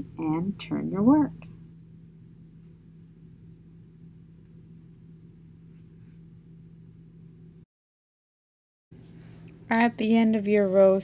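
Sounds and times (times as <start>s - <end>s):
low room hum: 0.0s - 7.7s, 9.0s - 11.0s.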